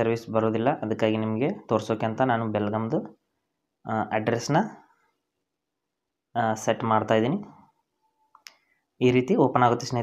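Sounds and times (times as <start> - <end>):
man speaking: 0.0 - 3.2, 3.8 - 4.9, 6.3 - 7.8, 9.0 - 10.0.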